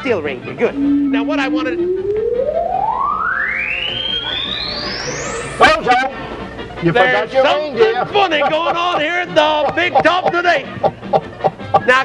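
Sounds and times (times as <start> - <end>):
electronic tone gliding upward: 0.6 - 6.1.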